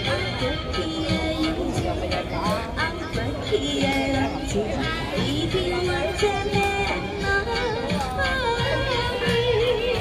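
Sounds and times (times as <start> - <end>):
accompaniment music: 0.0 - 10.0
woman singing into a microphone: 0.0 - 10.0.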